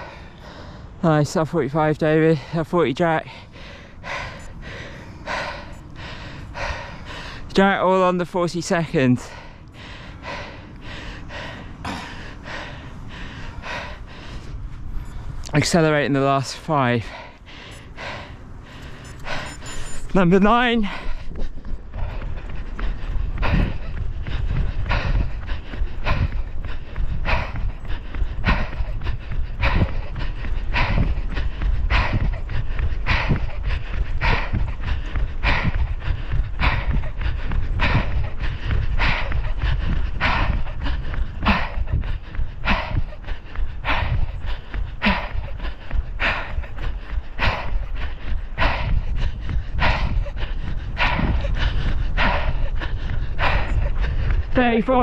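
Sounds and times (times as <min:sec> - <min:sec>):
runner panting heavily: 0:00.0 - 0:55.0
wind rumble on microphone: 0:00.0 - 0:55.0.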